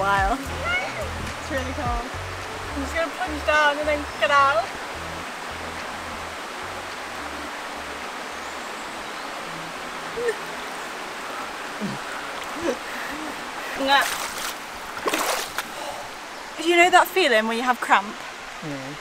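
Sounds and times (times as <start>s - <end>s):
water splashing: 0.0s - 19.0s
waterfall rushing: 0.0s - 19.0s
woman crying out: 10.2s - 10.5s.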